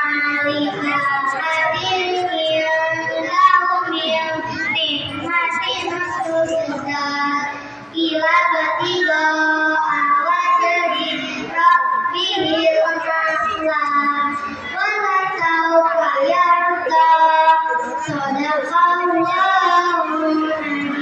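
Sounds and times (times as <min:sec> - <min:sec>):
children singing together: 0:00.0 - 0:21.0.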